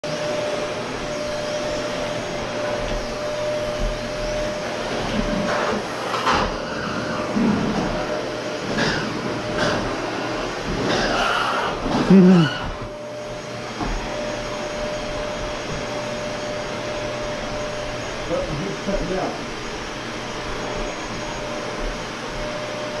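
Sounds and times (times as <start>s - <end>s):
vacuum cleaner running: 0.0s - 23.0s.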